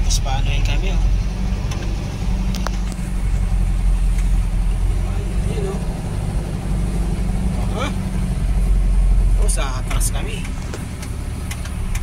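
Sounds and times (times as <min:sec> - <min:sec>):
vehicle engine low rumble: 0:00.0 - 0:12.0.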